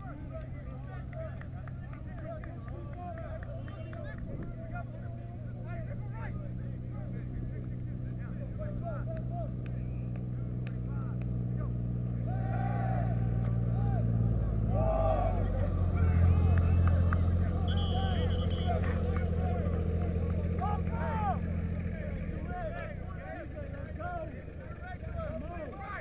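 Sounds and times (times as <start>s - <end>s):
small engine running: 0.0s - 26.0s
many voices shouting: 12.2s - 19.8s, 20.4s - 26.0s
whistle blast: 17.6s - 19.0s.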